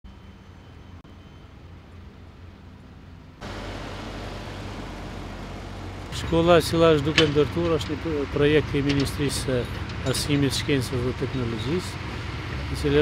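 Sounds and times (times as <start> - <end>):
excavator diesel engine running: 3.4 - 13.0.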